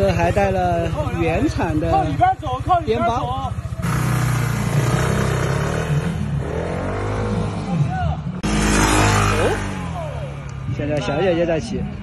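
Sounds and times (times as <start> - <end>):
scooter engine revving: 0.0 - 7.8, 8.4 - 10.4.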